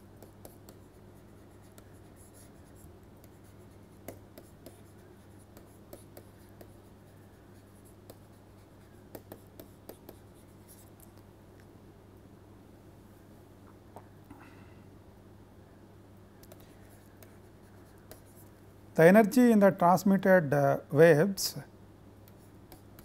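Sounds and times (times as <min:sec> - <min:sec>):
stylus tapping and scratching on screen: 0:00.0 - 0:11.7, 0:16.4 - 0:18.6, 0:22.2 - 0:23.0
low steady hum: 0:00.0 - 0:23.0.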